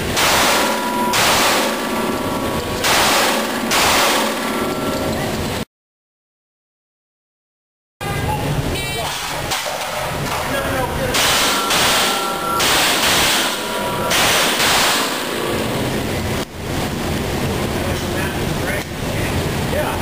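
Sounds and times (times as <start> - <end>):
pistol shots echoing indoors: 0.2 - 2.0, 2.8 - 4.6, 11.2 - 15.2.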